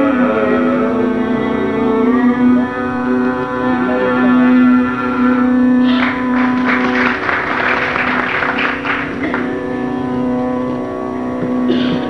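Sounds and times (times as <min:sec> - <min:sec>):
steady drone: 0:00.0 - 0:12.0
audience clapping: 0:05.9 - 0:09.6.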